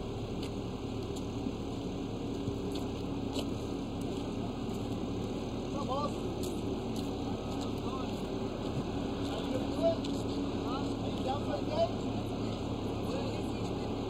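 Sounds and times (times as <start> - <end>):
roller engine humming: 0.0 - 14.0.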